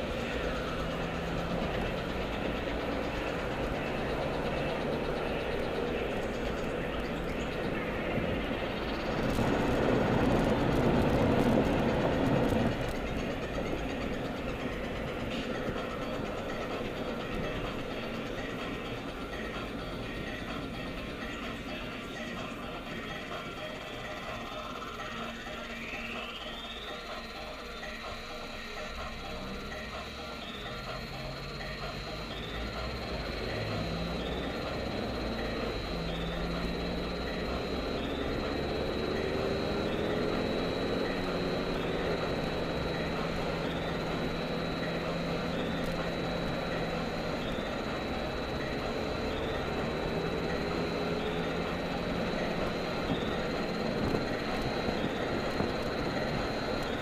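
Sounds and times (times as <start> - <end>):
car engine and road noise: 0.0 - 57.0
thin high whine: 0.0 - 57.0.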